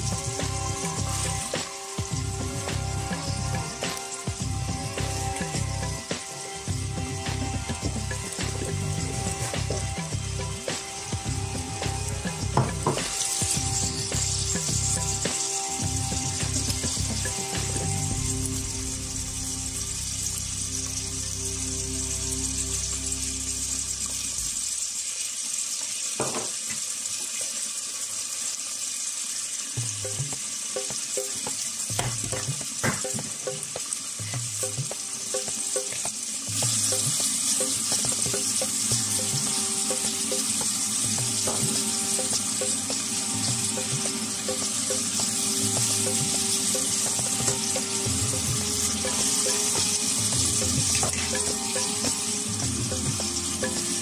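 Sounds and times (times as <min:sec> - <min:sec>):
quiet background music: 0:00.0 - 0:24.8, 0:29.8 - 0:54.0
oil and beans sizzling in pot: 0:00.0 - 0:54.0.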